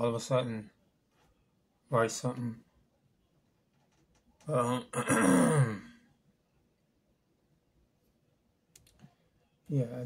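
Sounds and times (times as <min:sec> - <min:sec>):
man clearing throat: 0:04.7 - 0:06.0.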